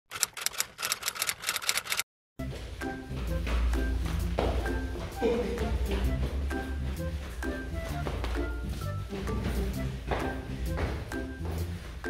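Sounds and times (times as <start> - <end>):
rapid mechanical clicking: 0.1 - 2.0.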